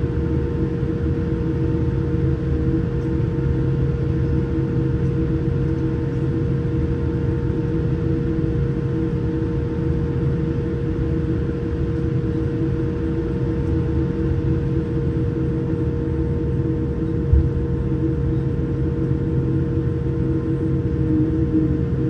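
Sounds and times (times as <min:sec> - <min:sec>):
jet engines and cabin air hum: 0:00.0 - 0:22.0.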